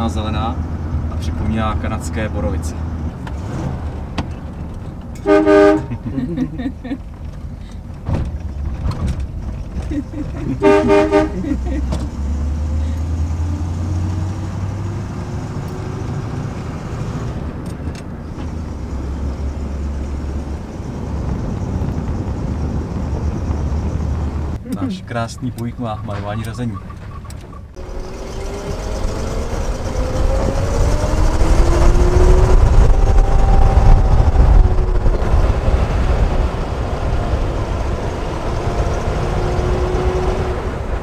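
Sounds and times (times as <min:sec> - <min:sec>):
car engine low rumble: 0:00.0 - 0:41.0
car horn toots: 0:05.2 - 0:06.0, 0:10.5 - 0:11.6.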